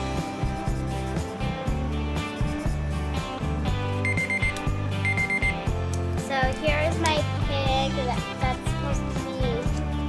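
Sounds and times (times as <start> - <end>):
pop music: 0.0 - 10.0
timer alarm high beeps: 4.0 - 5.7.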